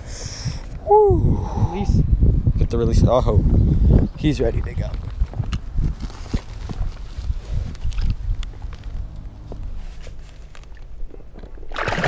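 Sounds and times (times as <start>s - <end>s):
fish splashing into water: 11.6s - 12.0s.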